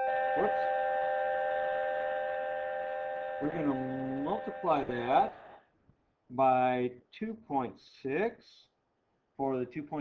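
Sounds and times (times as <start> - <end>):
steady electronic tone: 0.0 - 5.6.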